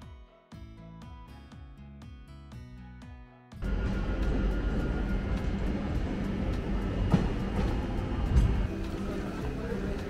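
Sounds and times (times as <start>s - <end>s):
train rumbling: 3.6s - 10.0s.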